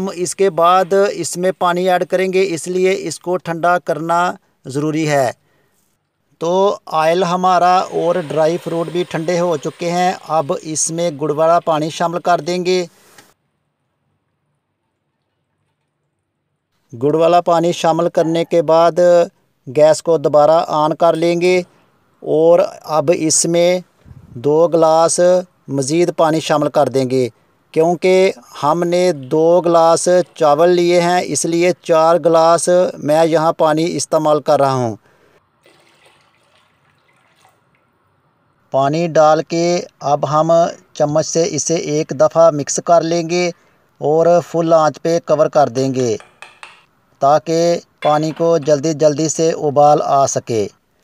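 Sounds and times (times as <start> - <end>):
water pouring into a pot: 7.5 - 12.7, 35.6 - 37.8.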